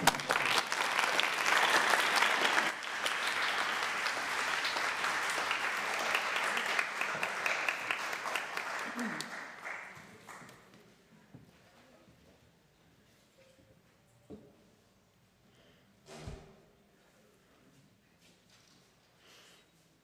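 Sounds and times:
congregation applauding: 0.0 - 10.7.

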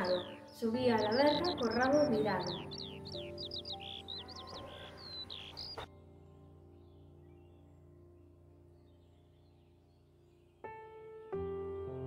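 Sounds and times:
skylark song: 0.0 - 10.7
soft background music: 0.0 - 12.0.

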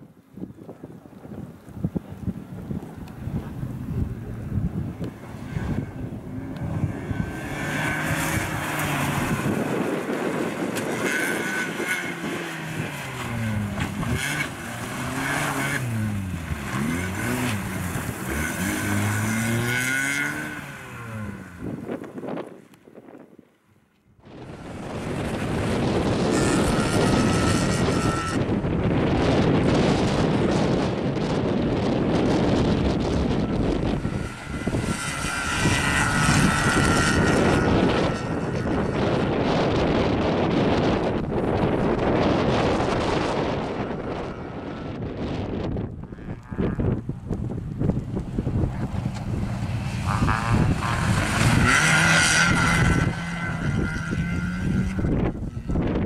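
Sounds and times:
wind on microphone: 0.0 - 23.6, 24.2 - 56.0
car engine revving: 4.0 - 22.2, 31.2 - 56.0.

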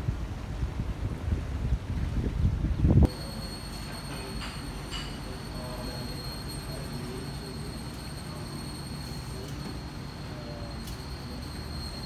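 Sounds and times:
wind buffeting microphone: 0.0 - 3.1
high electrical whine: 3.0 - 12.0.

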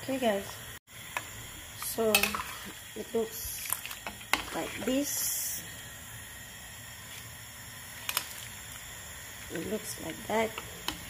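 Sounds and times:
pot of soup hissing: 0.6 - 11.0.

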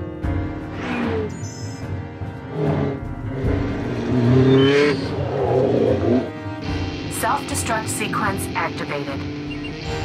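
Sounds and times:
car engine revving: 2.3 - 10.0.

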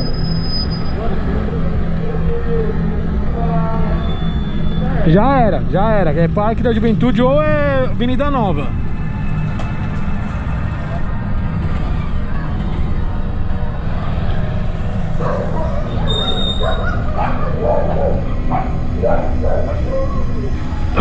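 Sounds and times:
dog barking: 15.2 - 20.5
low rumble: 17.1 - 21.0.

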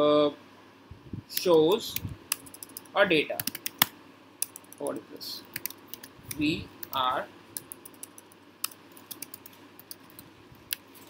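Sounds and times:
typing on computer keyboard: 2.3 - 4.9, 5.6 - 6.1, 7.6 - 10.2.

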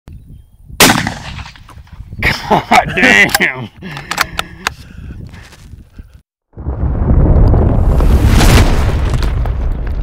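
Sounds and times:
rifle shot: 0.8 - 1.7.

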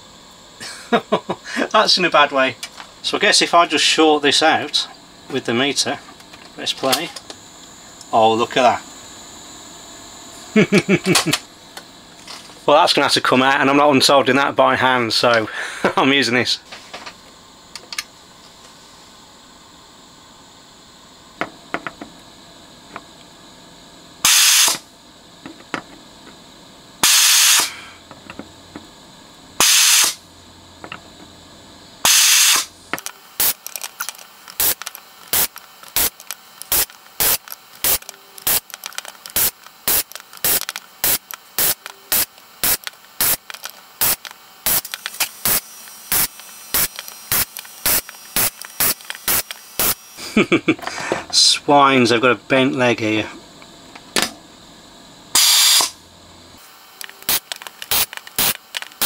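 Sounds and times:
desoldering gun suction hissing: 24.2 - 24.8, 27.0 - 28.0, 29.6 - 30.2, 32.0 - 50.6, 55.4 - 56.0, 56.6 - 59.0.

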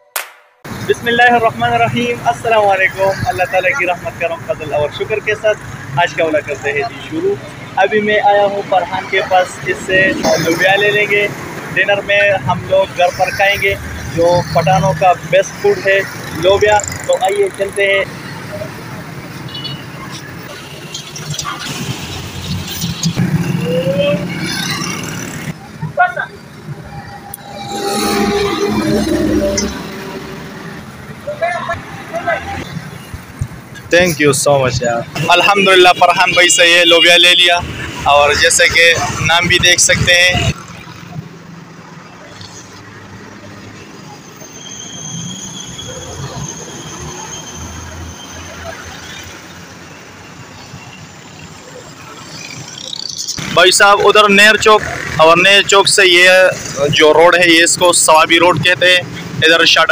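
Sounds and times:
road traffic passing: 0.2 - 59.9
voices talking: 0.7 - 41.4, 42.0 - 59.9
high-pitched whine: 26.2 - 32.6.

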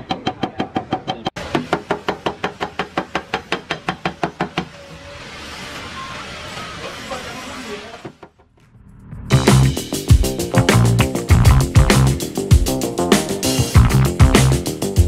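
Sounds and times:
hammer tapping on sheet metal: 0.0 - 4.8.

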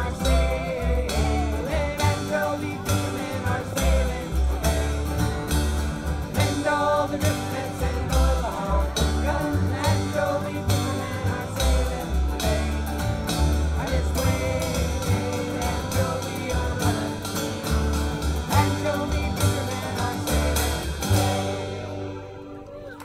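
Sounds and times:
several voices singing: 0.0 - 22.8
acoustic band playing country song: 0.0 - 23.0.

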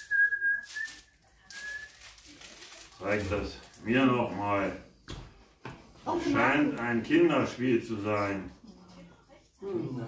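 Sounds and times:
thin high whistling tone: 0.0 - 2.0.

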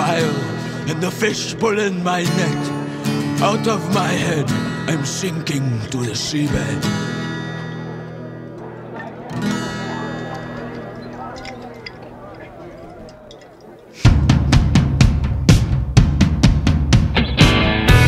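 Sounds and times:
drum kit beat: 14.0 - 18.0
rock band playing: 14.2 - 18.0
electric guitar chord ringing: 17.2 - 18.0.

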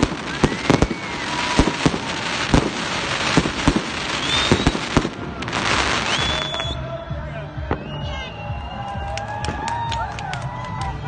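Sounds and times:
fireworks bursting: 0.0 - 6.8
background music: 0.0 - 11.0.

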